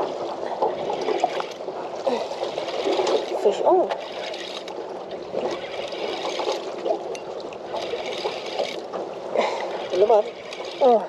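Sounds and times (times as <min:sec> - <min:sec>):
water lapping against boat hull: 0:00.0 - 0:11.0.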